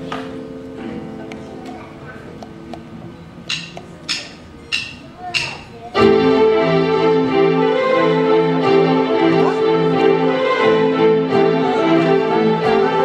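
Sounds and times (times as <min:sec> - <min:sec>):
keyboard held notes: 0:06.0 - 0:13.0
live band playing: 0:06.0 - 0:13.0.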